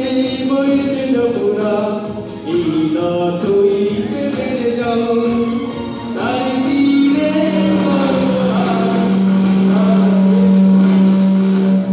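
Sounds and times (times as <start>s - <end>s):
loud low drone: 6.5s - 11.9s.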